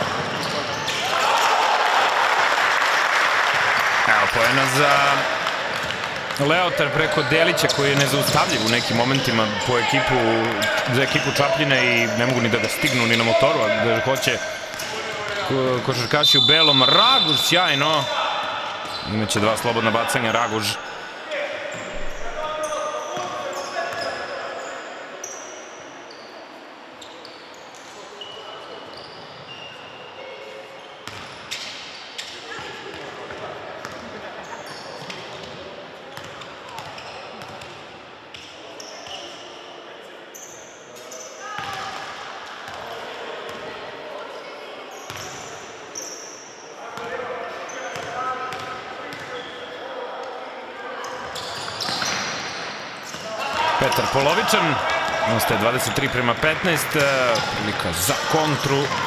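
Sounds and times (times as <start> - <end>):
sneakers squeaking: 0.0 - 1.4, 5.3 - 19.6, 21.7 - 39.5, 40.3 - 41.9, 44.9 - 49.8, 51.0 - 59.0.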